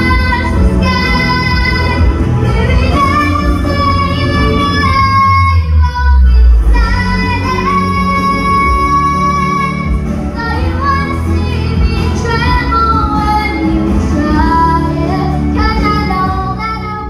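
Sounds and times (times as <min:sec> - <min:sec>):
girl singing into a microphone: 0:00.0 - 0:17.0
musical accompaniment with bass: 0:00.0 - 0:17.0.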